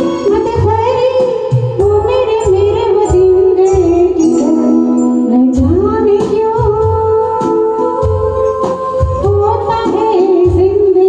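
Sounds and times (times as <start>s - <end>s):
electronic keyboard: 0.0s - 11.0s
steady drum beat: 0.0s - 11.0s
woman singing into microphone: 0.0s - 11.0s.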